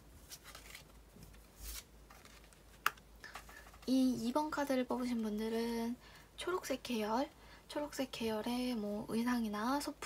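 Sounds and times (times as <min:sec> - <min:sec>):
cards rustling and sliding: 0:00.2 - 0:03.9.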